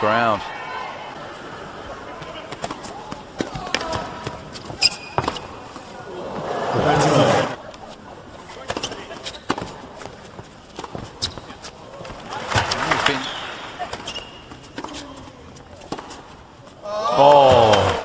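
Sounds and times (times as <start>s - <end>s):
crowd reaction: 0.0s - 4.3s, 6.0s - 7.6s, 12.0s - 14.1s, 16.8s - 18.0s
tennis ball bouncing: 2.2s - 5.9s, 8.5s - 11.6s, 13.8s - 16.3s.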